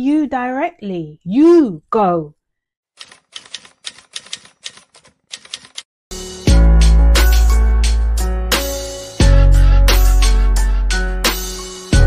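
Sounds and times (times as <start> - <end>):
typewriter key clacks: 3.0 - 5.9.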